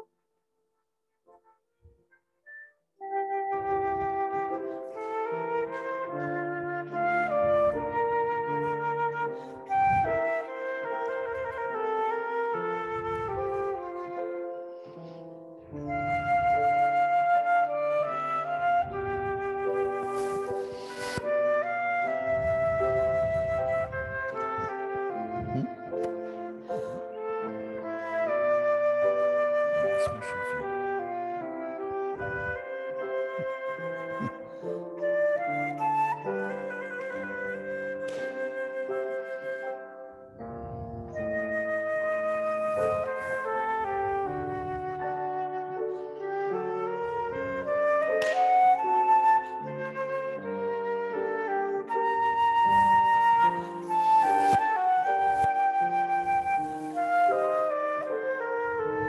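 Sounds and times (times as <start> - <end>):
flute playing a melody: 1.3 - 59.0
piano accompaniment: 3.0 - 59.0.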